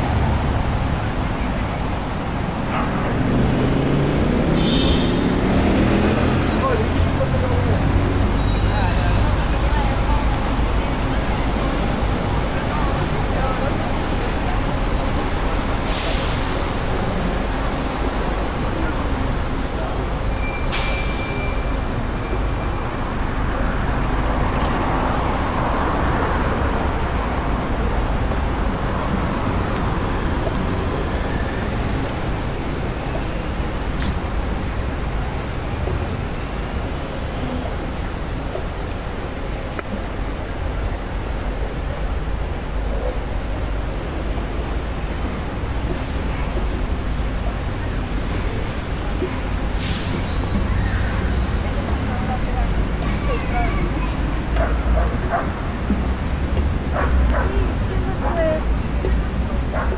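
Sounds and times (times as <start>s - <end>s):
road traffic rumble: 0.0s - 59.9s
voices of passersby: 0.0s - 59.9s
loud vehicle passing: 2.4s - 12.4s.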